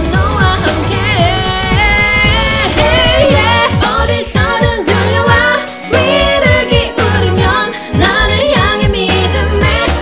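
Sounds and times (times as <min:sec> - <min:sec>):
bass line: 0:00.0 - 0:10.0
instrumental backing track: 0:00.0 - 0:10.0
woman singing pop song: 0:00.0 - 0:10.0.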